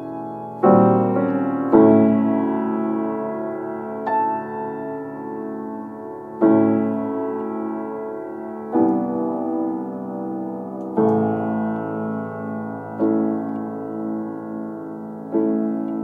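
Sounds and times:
solo piano lullaby: 0:00.0 - 0:16.0.

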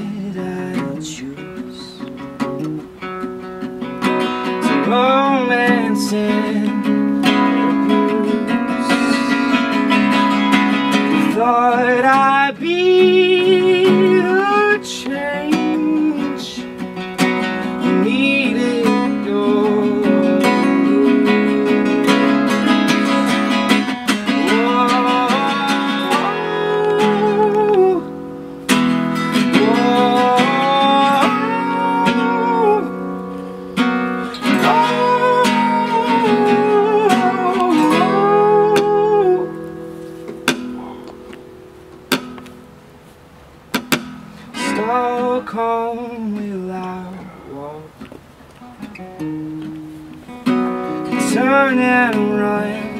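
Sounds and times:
man singing: 0:00.0 - 0:02.5, 0:04.4 - 0:28.3, 0:29.2 - 0:39.7, 0:44.5 - 0:48.0, 0:51.0 - 0:52.9
acoustic guitars strummed and picked: 0:00.0 - 0:52.9.

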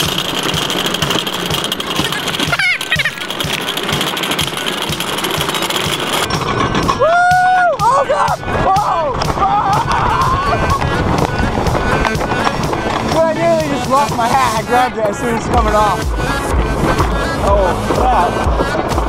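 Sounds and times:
riders screaming and yelling: 0:00.0 - 0:19.0
roller coaster track rumble: 0:00.0 - 0:19.0
wind: 0:00.0 - 0:19.0.

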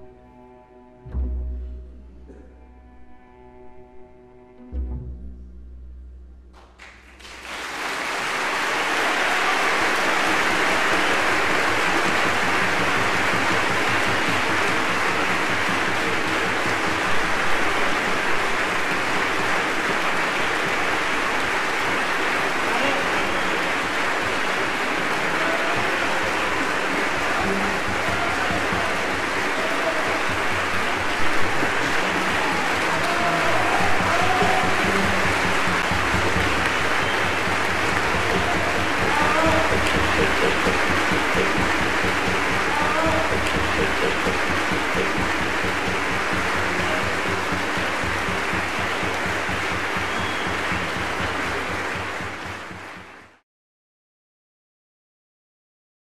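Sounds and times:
audience applauding: 0:06.6 - 0:53.4.

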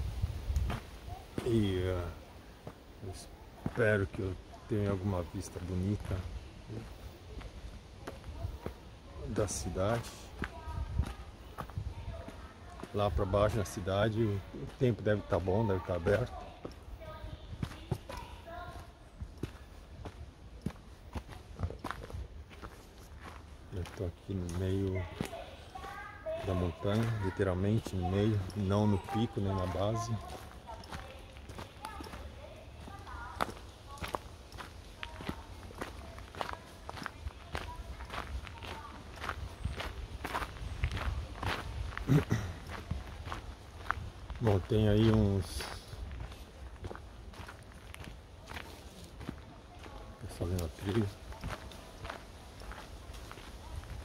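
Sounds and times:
footsteps on stone steps: 0:00.1 - 0:54.0.

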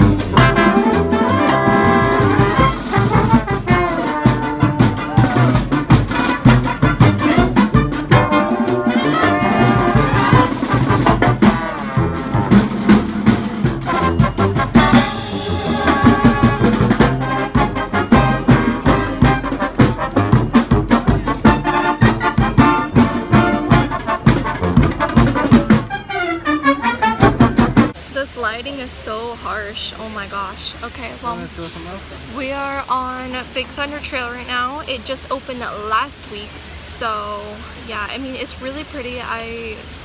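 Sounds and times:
brass band playing: 0:00.0 - 0:28.0
marching drum beat: 0:00.0 - 0:28.0.

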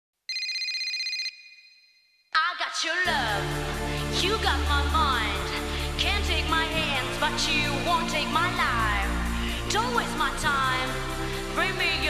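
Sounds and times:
high electronic ringing tone: 0:00.3 - 0:02.3.

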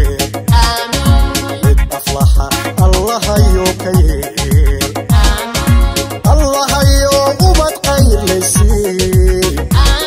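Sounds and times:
electronic kick drum: 0:00.0 - 0:10.0
keyboard melody: 0:00.0 - 0:10.0.

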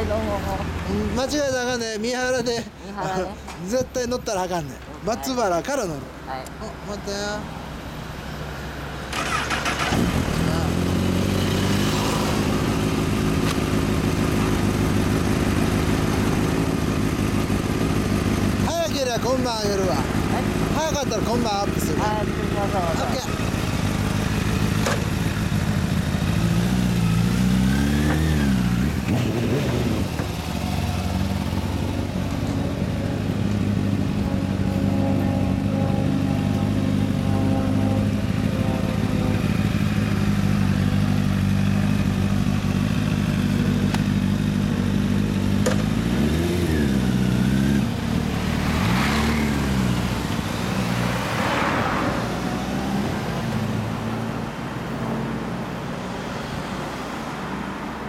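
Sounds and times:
road traffic: 0:00.0 - 0:58.0
motorcycles pulling away: 0:09.1 - 0:55.1
motorcycles idling: 0:09.2 - 0:50.9.

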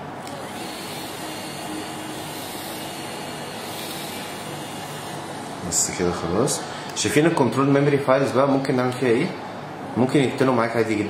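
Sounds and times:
mechanical hum and hiss: 0:00.0 - 0:11.0.

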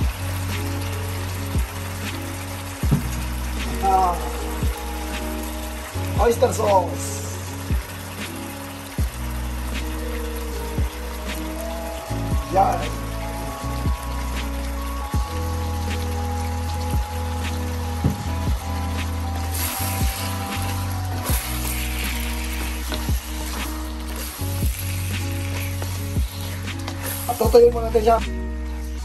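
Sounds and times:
meat sizzling in a pan: 0:00.0 - 0:28.1
background music with bass line: 0:00.0 - 0:29.0.

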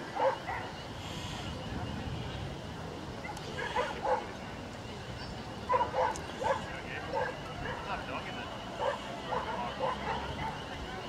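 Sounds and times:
dog barking: 0:00.2 - 0:00.7, 0:03.3 - 0:04.3, 0:05.7 - 0:07.9, 0:08.8 - 0:10.6.

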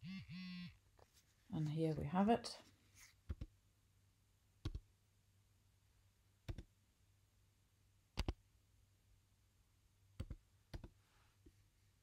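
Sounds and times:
computer keystrokes: 0:04.6 - 0:04.8, 0:06.5 - 0:06.7, 0:08.2 - 0:08.4.

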